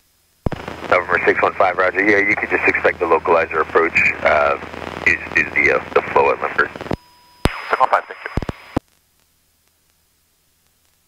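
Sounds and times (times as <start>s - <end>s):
voice over radio: 0.9s - 6.9s, 7.5s - 8.6s
radio squelch clicks: 3.6s - 8.8s.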